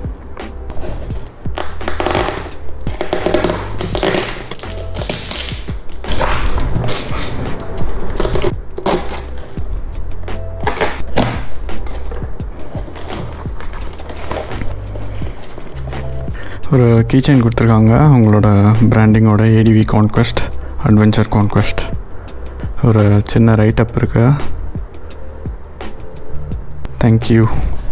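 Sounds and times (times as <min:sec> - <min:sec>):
background music with low beat: 0:00.0 - 0:27.9
cardboard box tearing: 0:00.7 - 0:09.6, 0:12.7 - 0:14.8
packing tape ripping: 0:00.7 - 0:09.6, 0:10.6 - 0:16.1.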